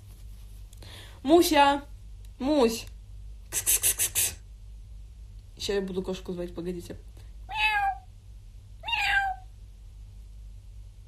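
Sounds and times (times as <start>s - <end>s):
drawn-out meow: 7.5s - 8.0s, 8.8s - 9.5s.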